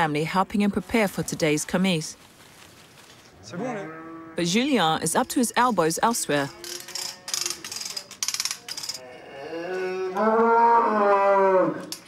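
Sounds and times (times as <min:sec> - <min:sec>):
cow mooing: 0:03.5 - 0:04.5, 0:06.4 - 0:07.6, 0:09.0 - 0:12.0.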